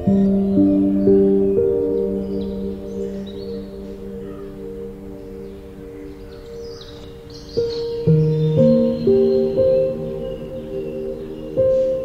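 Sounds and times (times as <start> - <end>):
soft held music notes: 0.0 - 12.0.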